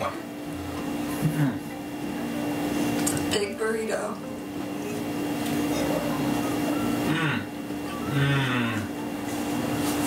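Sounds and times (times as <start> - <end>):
steady tonal hum: 0.0 - 10.0.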